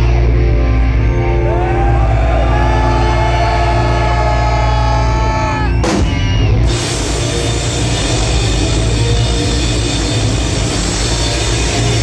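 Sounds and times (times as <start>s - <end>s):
bending electric guitar line: 0.0s - 12.0s
heavy rock band playing live: 0.0s - 12.0s.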